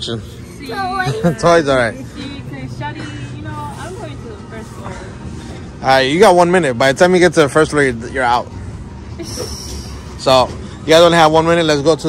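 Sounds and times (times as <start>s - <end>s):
store ambience hum: 0.0s - 12.0s.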